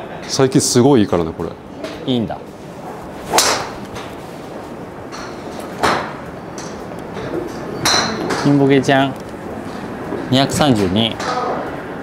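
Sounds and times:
golf driver striking ball: 3.3s - 3.8s.

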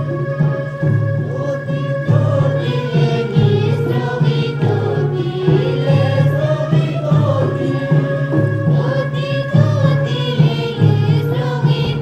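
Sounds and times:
group singing folk song: 0.0s - 12.0s
low steady pulse: 0.0s - 12.0s.

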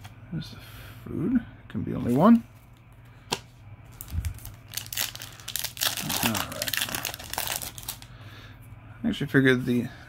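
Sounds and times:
foil wrapper crinkling: 3.9s - 8.1s.

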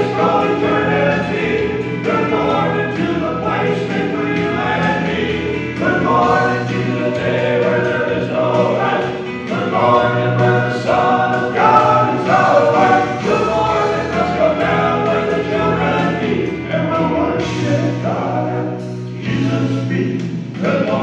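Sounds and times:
male vocal quartet singing: 0.0s - 21.0s.

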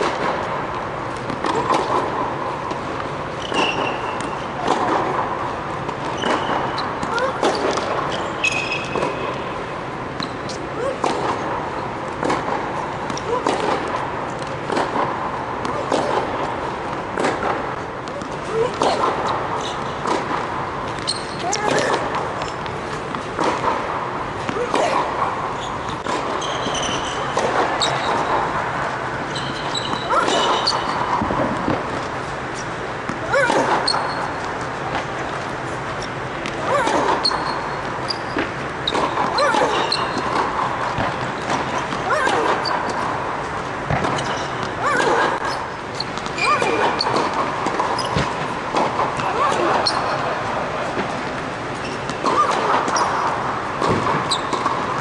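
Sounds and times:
steady hall noise: 0.0s - 55.0s
racket hitting tennis ball: 1.1s - 55.0s
short rising squeak: 25.6s - 28.3s.

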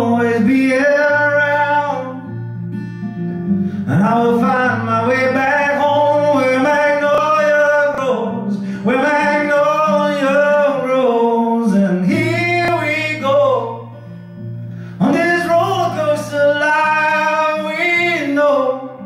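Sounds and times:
man singing: 0.0s - 2.5s, 3.8s - 14.2s, 14.9s - 19.0s
strummed acoustic guitar: 0.0s - 19.0s.

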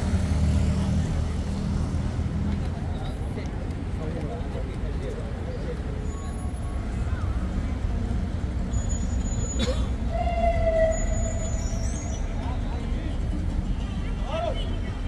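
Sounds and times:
passers-by talking: 0.0s - 15.0s
road traffic rumble: 0.0s - 15.0s.

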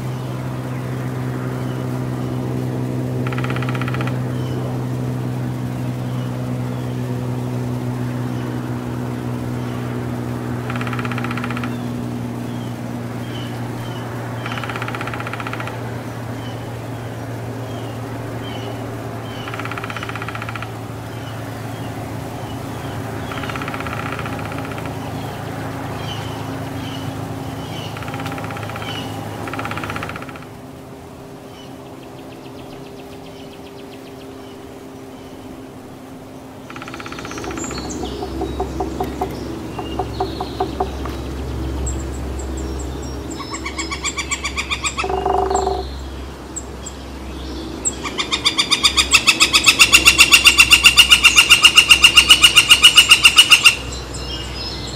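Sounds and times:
low mechanical hum: 0.0s - 54.9s
woodpecker drumming: 3.1s - 6.2s, 9.6s - 15.8s, 18.5s - 21.4s, 22.8s - 30.6s, 36.5s - 46.1s, 47.8s - 54.4s
high bird call notes: 36.6s - 42.6s, 43.3s - 46.1s.

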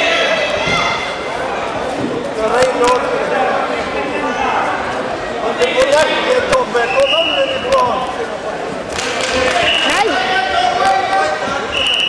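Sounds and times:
voices calling out: 9.0s - 12.0s.

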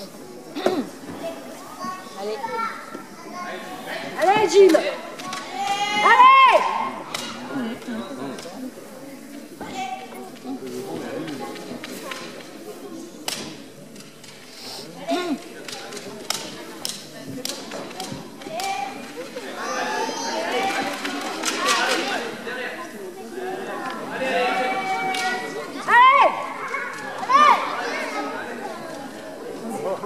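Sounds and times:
children chattering and calling out: 0.0s - 30.0s
murmur of voices: 0.0s - 30.0s.

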